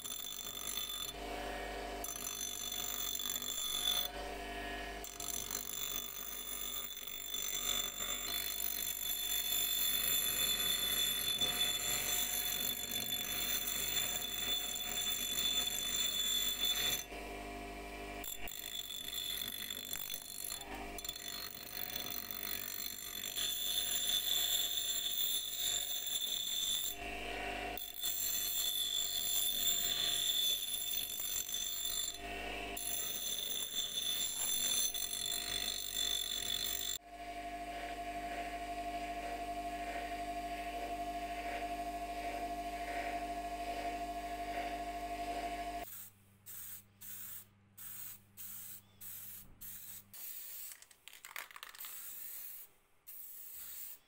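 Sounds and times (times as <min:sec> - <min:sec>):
bench grinder grinding metal: 0:00.0 - 0:37.0, 0:37.7 - 0:45.9
spray paint spurts: 0:45.9 - 0:54.0.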